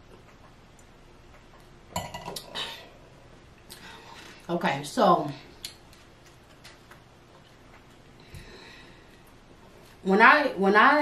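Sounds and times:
wine glass clinking on countertop: 2.0s - 2.4s.

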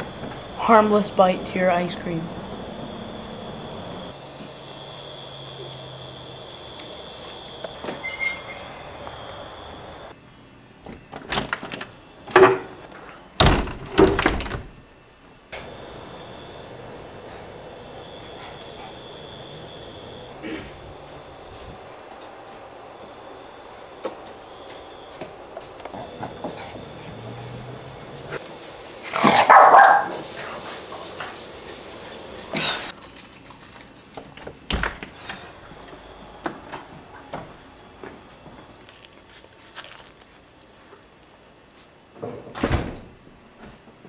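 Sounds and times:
camcorder hiss: 0.0s - 4.2s, 5.1s - 10.1s, 15.6s - 32.9s
faint high whine: 0.0s - 11.1s, 15.6s - 32.9s.

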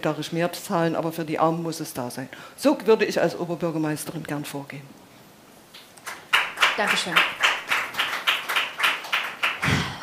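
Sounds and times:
hands clapping: 5.8s - 10.0s.

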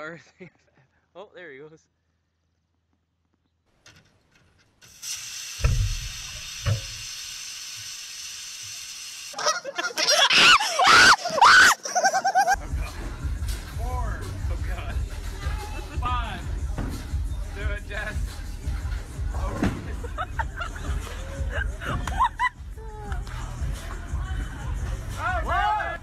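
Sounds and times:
steady hiss: 4.8s - 9.4s
people screaming and yelling: 9.4s - 12.6s, 20.9s - 26.0s.

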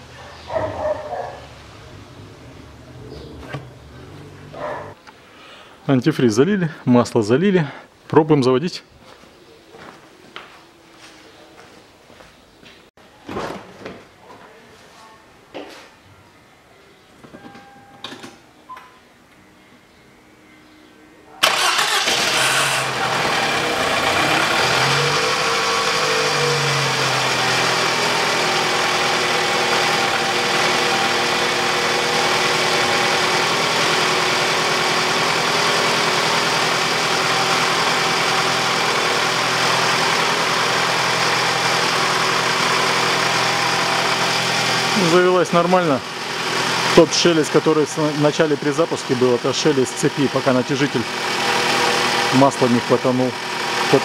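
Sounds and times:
car engine starting and idling: 0.8s - 5.0s, 21.4s - 54.0s.

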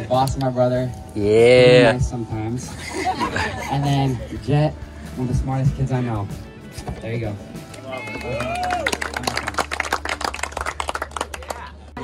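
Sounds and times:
group clapping: 7.6s - 12.0s.

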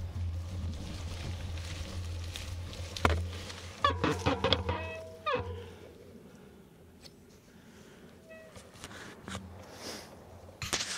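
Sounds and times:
mountain bike clattering: 0.0s - 5.9s
bike brakes squealing: 8.3s - 8.6s.

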